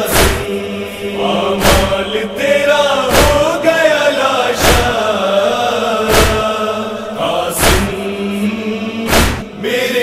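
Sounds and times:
voices chanting long notes: 0.0s - 10.0s.

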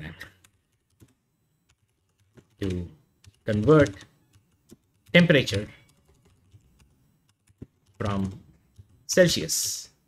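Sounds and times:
computer keyboard keystrokes: 0.4s - 9.0s.

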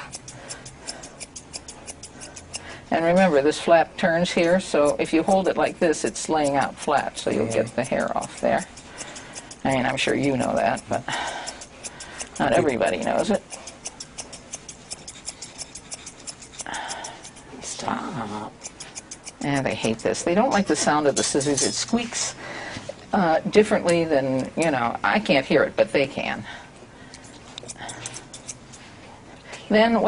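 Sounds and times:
shears snipping hair: 0.0s - 22.4s, 23.7s - 24.9s, 27.1s - 29.0s.

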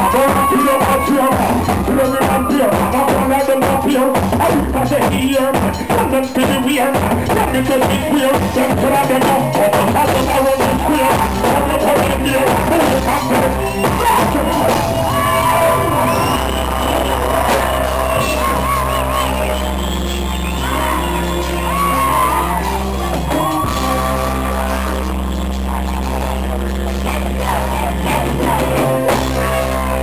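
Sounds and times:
heavy low bass: 0.0s - 30.0s
reggae band playing: 0.0s - 30.0s
voices singing and shouting: 0.0s - 30.0s.

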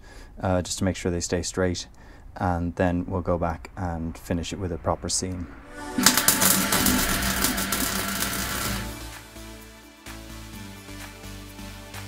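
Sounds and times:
background music: 5.0s - 12.0s
welding arc crackling: 5.1s - 9.2s.

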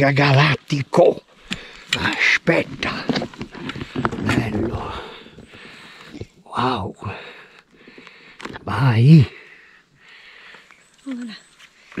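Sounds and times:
person speaking: 4.1s - 5.2s.

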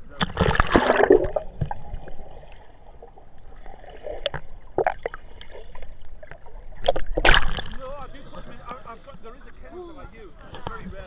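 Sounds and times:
sea water splashing and gurgling: 0.0s - 8.3s.

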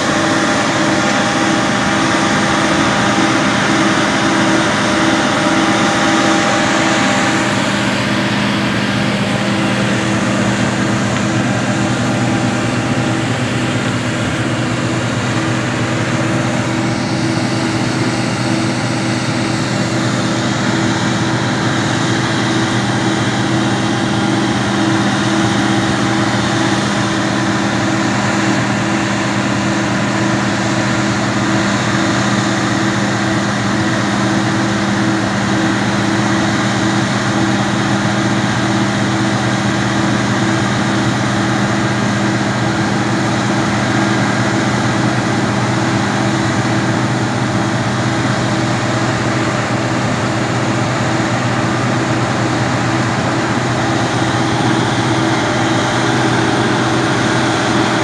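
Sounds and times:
auger pouring grain: 0.0s - 58.0s
combine harvester running: 0.0s - 58.0s.

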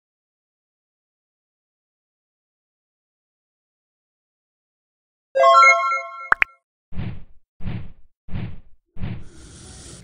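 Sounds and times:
bright chime: 5.4s - 6.4s.

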